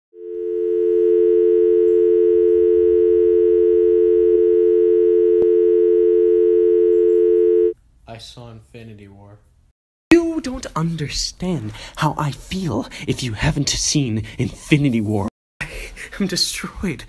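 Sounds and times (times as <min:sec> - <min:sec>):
telephone dial tone: 0:00.2 - 0:07.8.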